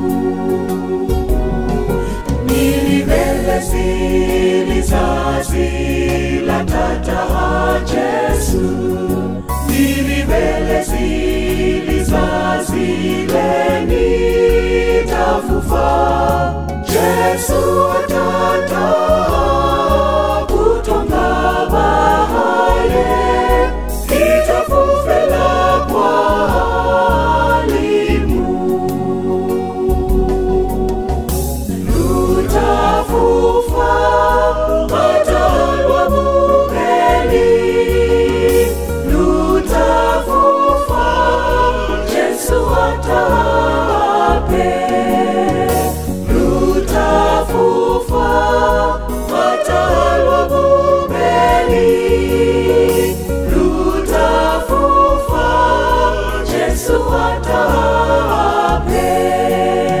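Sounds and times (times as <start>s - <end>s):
bass line: 0.0s - 60.0s
choir singing gospel song: 0.0s - 60.0s.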